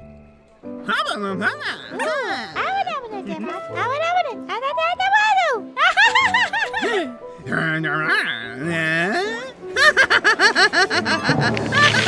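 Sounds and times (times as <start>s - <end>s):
cartoon character vocalizing: 1.4s - 2.7s
cartoon character laughing: 5.8s - 7.1s, 9.3s - 12.0s.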